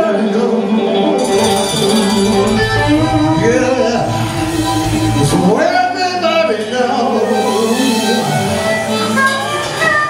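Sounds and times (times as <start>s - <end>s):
electric guitar: 0.5s - 10.0s
harmonica: 1.0s - 10.0s
bass guitar: 1.2s - 9.4s
drums: 1.2s - 10.0s.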